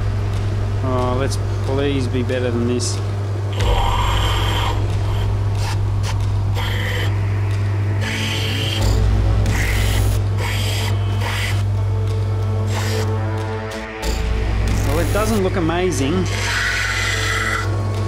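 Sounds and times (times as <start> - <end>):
grinder motor humming: 3.2 - 18.0
stone rasping on grinding wheel: 14.0 - 17.8.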